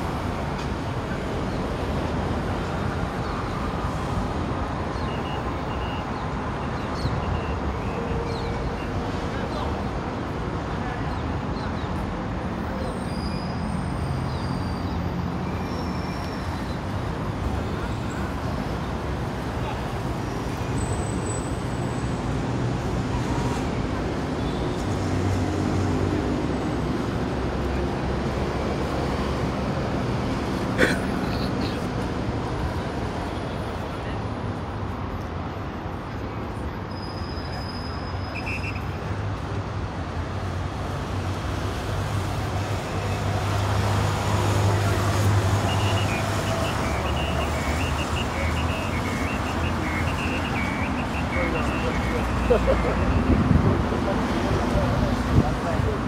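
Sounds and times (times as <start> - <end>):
passing cars and buses: 0.0 - 56.0
faint voices: 44.6 - 56.0.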